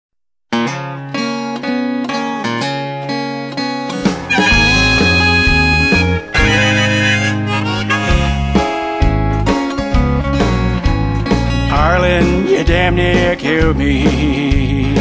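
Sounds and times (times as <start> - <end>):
picked acoustic guitar: 0.5 - 15.0
bass line: 3.9 - 15.0
harmonica long held notes: 4.2 - 9.5.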